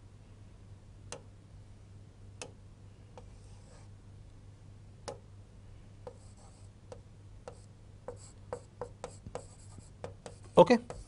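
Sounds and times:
pen tapping and scratching on screen: 0:03.2 - 0:03.9, 0:06.0 - 0:11.0.

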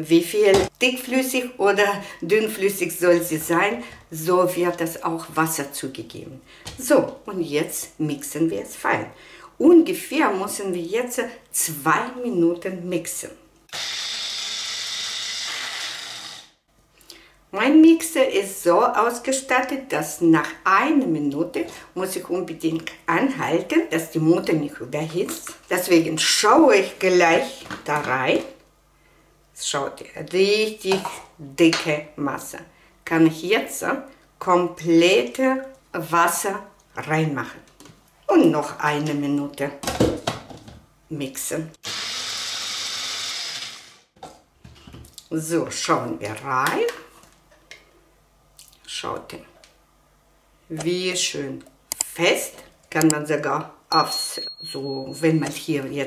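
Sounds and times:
blender motor whining: 0:13.7 - 0:16.6, 0:41.8 - 0:44.1.

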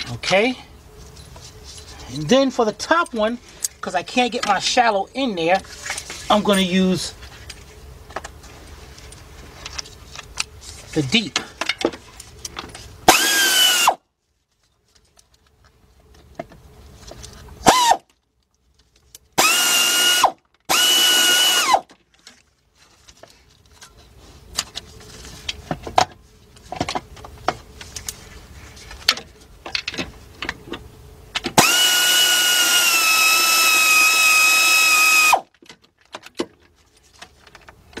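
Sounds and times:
cordless power tool spinning: 0:13.1 - 0:14.0, 0:17.7 - 0:18.0, 0:19.4 - 0:21.9, 0:31.6 - 0:35.4.

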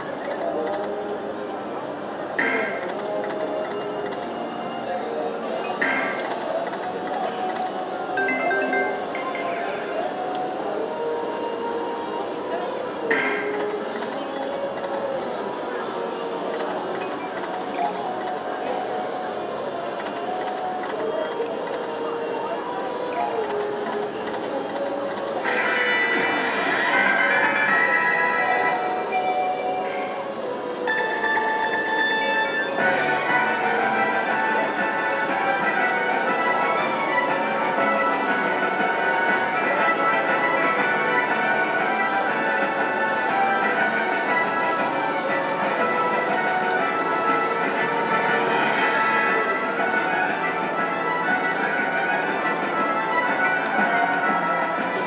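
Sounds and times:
slot machine bonus music: 0:05.7 - 0:06.6, 0:08.1 - 0:10.3, 0:25.4 - 0:30.2, 0:30.9 - 0:55.0.

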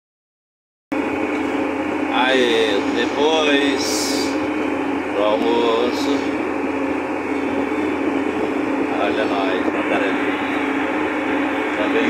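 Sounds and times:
tractor engine droning: 0:00.9 - 0:12.0.

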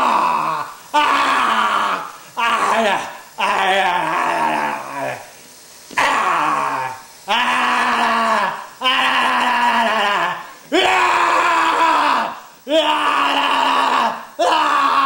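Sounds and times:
person screaming like a monster: 0:00.0 - 0:05.3, 0:06.0 - 0:15.0.

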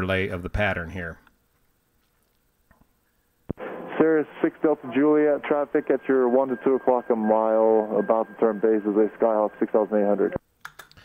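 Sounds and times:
radio static hiss: 0:03.0 - 0:10.4.

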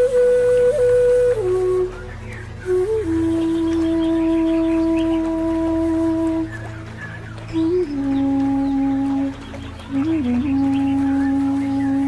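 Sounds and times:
flute holding a long note: 0:00.0 - 0:12.0.

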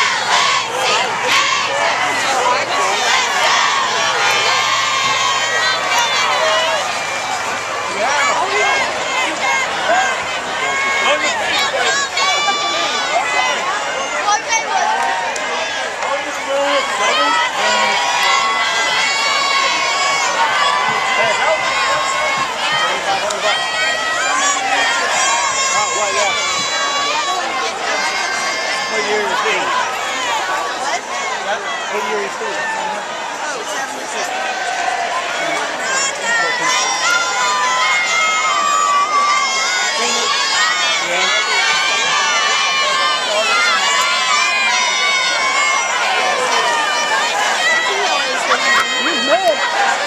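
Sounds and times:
crowd talking and cheering: 0:00.0 - 0:50.0
young people yelling: 0:00.0 - 0:50.0.

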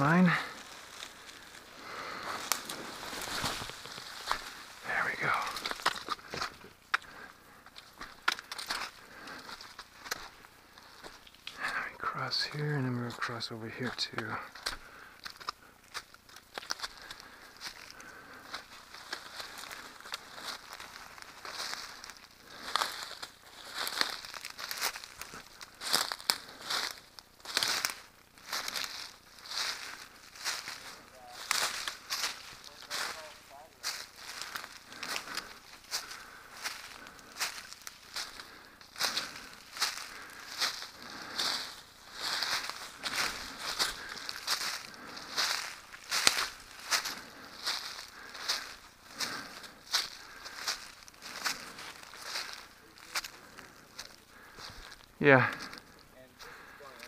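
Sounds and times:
vegetation rustling: 0:00.0 - 0:11.9, 0:13.8 - 0:57.0
footsteps crunching through dry leaves: 0:00.0 - 0:57.0.

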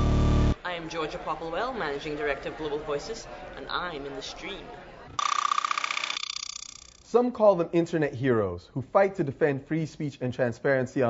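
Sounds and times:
pulsing electronic buzzing tone: 0:00.0 - 0:00.6, 0:05.2 - 0:07.1.

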